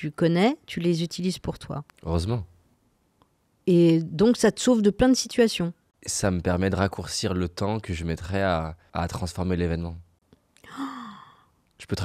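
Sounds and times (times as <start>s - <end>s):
person sighing: 10.6s - 11.5s.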